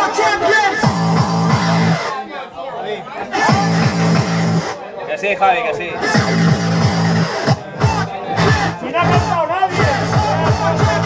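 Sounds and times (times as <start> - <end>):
loud club music: 0.0 - 2.2, 3.2 - 11.0.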